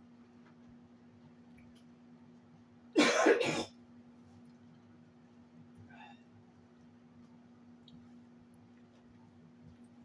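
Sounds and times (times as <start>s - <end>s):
person coughing: 3.0s - 3.8s.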